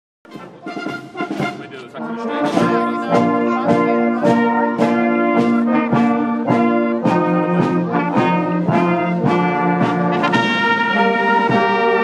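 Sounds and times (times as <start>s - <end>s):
people talking: 0.3s - 5.8s
brass and wind band playing: 0.3s - 12.0s.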